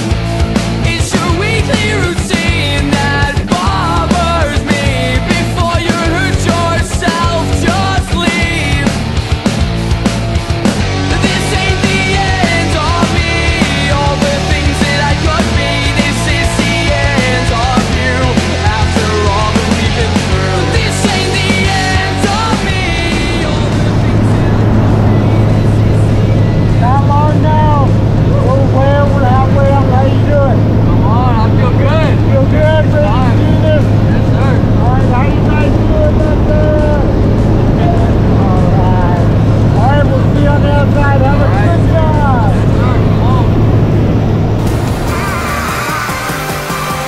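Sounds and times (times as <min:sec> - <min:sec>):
turboprop engine droning: 0:00.0 - 0:47.0.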